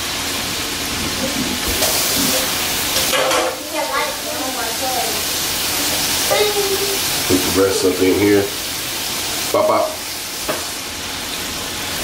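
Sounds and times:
chicken frying in hot oil: 0.0s - 12.0s.

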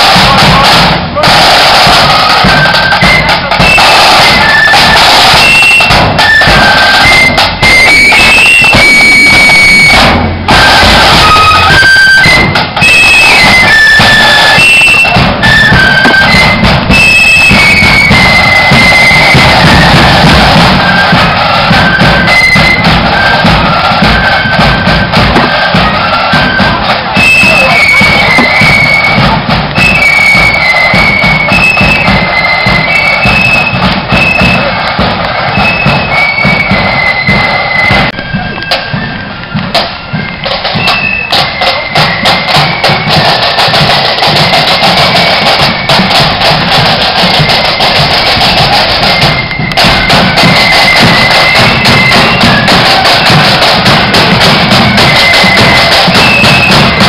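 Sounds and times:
flutes playing melody: 0.0s - 57.0s
steady drumming: 0.0s - 57.0s.

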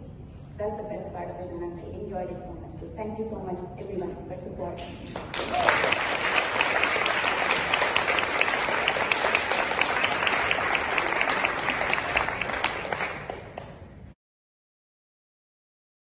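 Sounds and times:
audience applauding: 5.1s - 13.9s.

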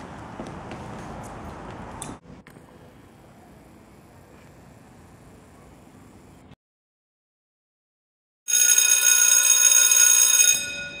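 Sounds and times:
loud electric bell ringing: 8.5s - 11.0s.

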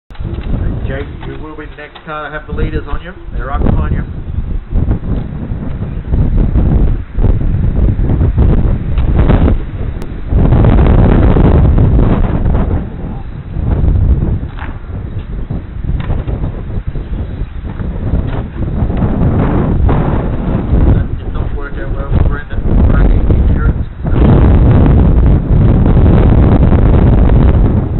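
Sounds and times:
wind buffeting microphone: 0.1s - 27.9s.

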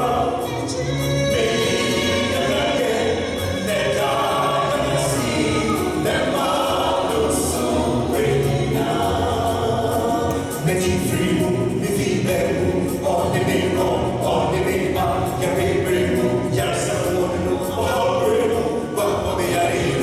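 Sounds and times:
group singing gospel in harmony: 0.0s - 20.0s.

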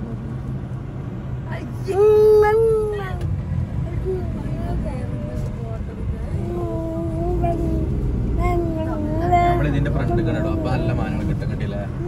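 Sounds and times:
road vehicle rumble: 0.0s - 12.0s.

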